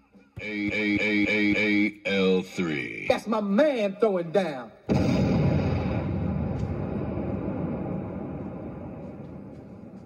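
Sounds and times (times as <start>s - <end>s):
dense noise effect: 4.9s - 10.0s.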